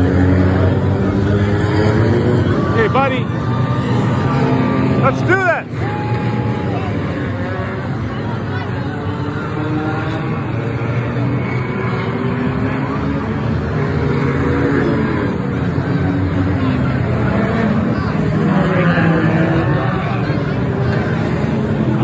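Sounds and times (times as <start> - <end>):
stock cars racing: 0.0 - 22.0.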